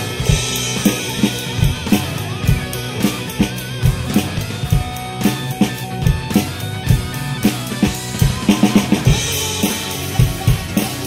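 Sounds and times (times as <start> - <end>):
drum fill: 0.0 - 11.0
recorded guitar and bass: 0.0 - 11.0
rock drum beat: 0.0 - 11.0.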